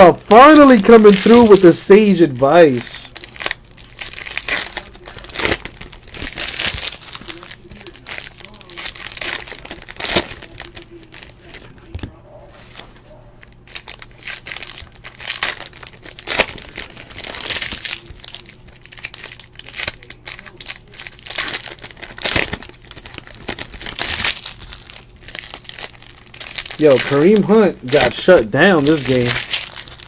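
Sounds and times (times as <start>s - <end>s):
card pack wrappers crinkling and tearing: 0.0s - 30.0s
cards rustling: 0.0s - 30.0s.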